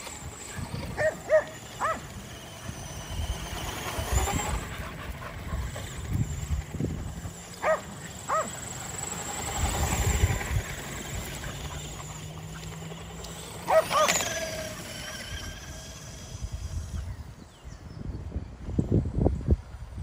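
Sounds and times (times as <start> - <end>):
dogs yipping: 0.8 - 6.5, 7.3 - 9.0, 11.1 - 16.2.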